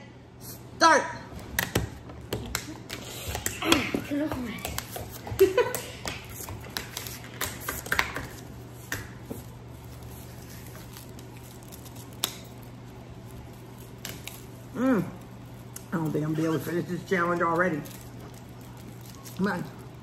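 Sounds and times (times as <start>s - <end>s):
straw wrappers crinkling: 2.7s - 20.0s.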